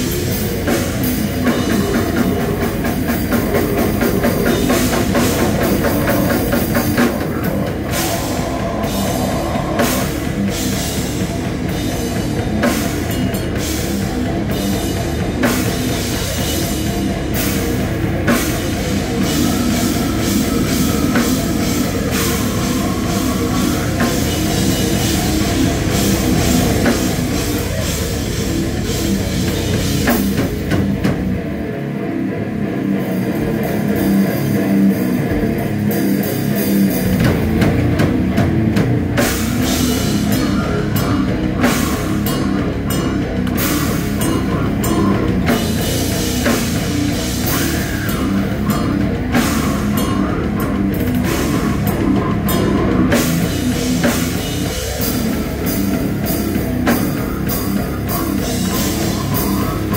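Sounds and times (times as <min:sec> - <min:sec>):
death metal band playing live: 0:00.0 - 0:59.9
drum kit: 0:00.0 - 0:59.9
heavily distorted guitars: 0:00.0 - 0:59.9.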